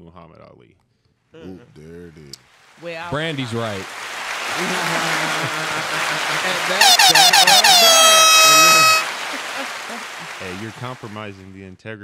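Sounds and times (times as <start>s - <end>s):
air horn blasts: 4.0s - 11.2s.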